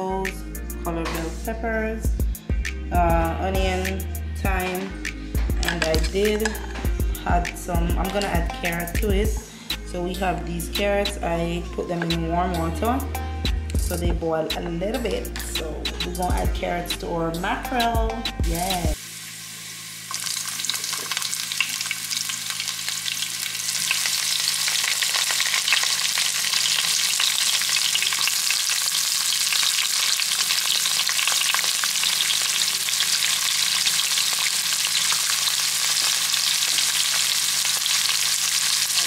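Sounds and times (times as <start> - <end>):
garlic and onions sizzling in oil: 18.4 - 39.0.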